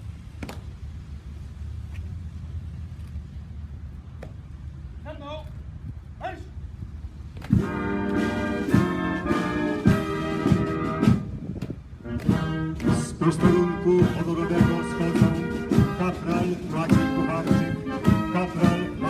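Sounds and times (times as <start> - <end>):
military brass band playing march: 7.5 - 19.0.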